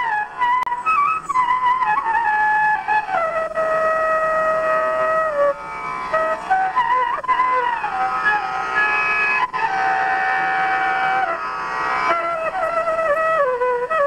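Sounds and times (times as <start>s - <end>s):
flute playing slow melody: 0.0s - 14.0s.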